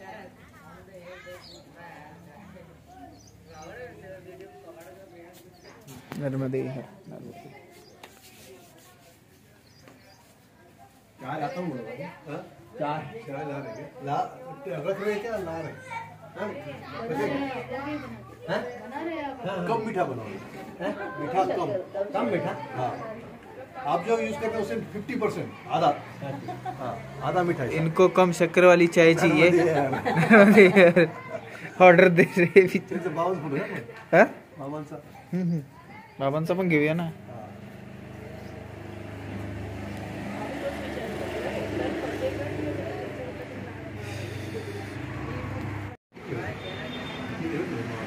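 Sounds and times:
voices talking: 0.0 - 48.0
children's voices: 15.0 - 19.4, 30.2 - 32.8, 35.0 - 36.2.

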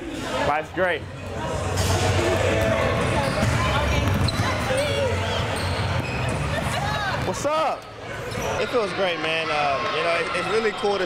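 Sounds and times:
basketballs bouncing on wooden floor: 2.6 - 7.4.

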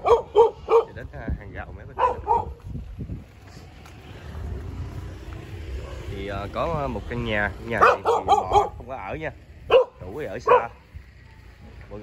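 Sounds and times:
dog barking: 0.0 - 1.0, 2.0 - 2.6, 5.8 - 6.2, 7.7 - 8.8, 9.7 - 10.8.

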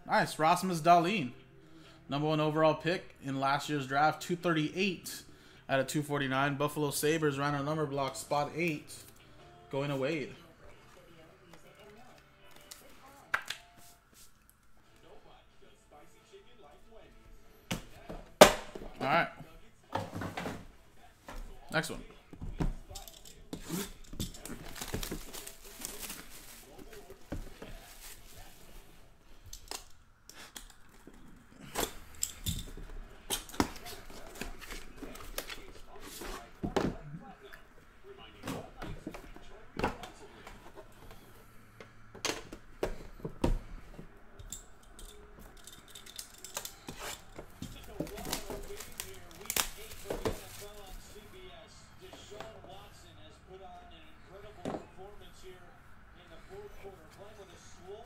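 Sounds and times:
plastic wrapper crinkling and tearing: 23.7 - 27.2, 47.8 - 51.1.

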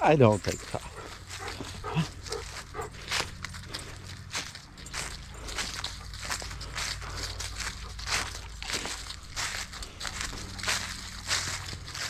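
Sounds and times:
footsteps crunching dry leaves: 0.0 - 12.0.

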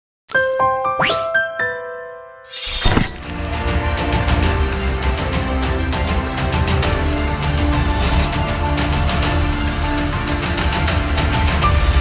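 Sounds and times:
logo jingle chimes: 0.3 - 1.1.

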